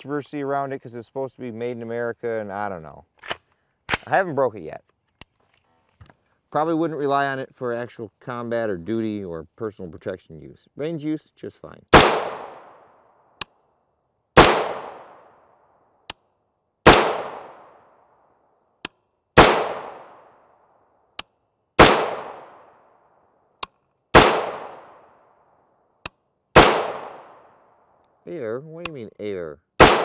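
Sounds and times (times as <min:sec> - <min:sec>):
rifle shots echoing: 0:11.9 - 0:12.9, 0:14.4 - 0:15.4, 0:16.8 - 0:17.8, 0:19.4 - 0:20.4, 0:21.8 - 0:22.9, 0:24.1 - 0:25.2, 0:26.6 - 0:27.6, 0:29.8 - 0:30.0.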